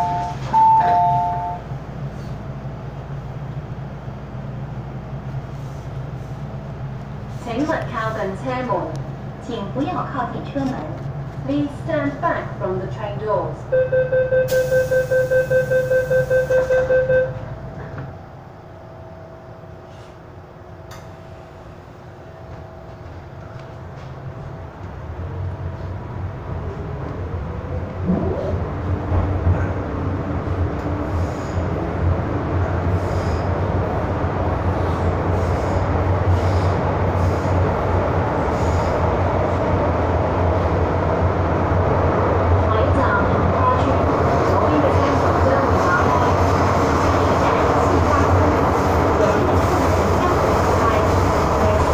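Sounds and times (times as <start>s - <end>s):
train door-closing chime beeping: 0.0s - 1.7s, 13.7s - 17.5s
train pulling out: 14.4s - 51.9s.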